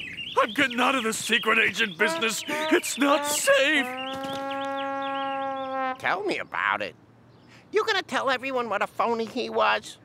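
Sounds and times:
long held cry: 0:02.1 - 0:04.0.

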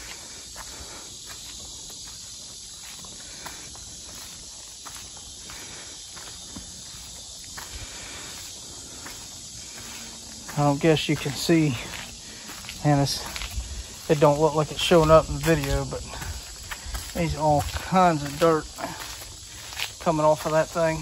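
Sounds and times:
footsteps on wet pavement: 0:00.0 - 0:21.0.

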